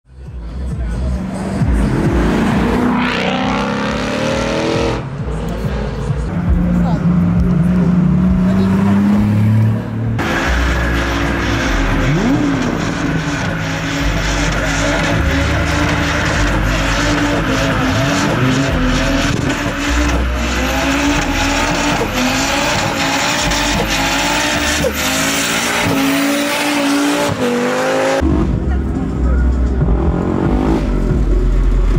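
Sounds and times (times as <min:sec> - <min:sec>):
car engine revving high: 0:00.6 - 0:31.9.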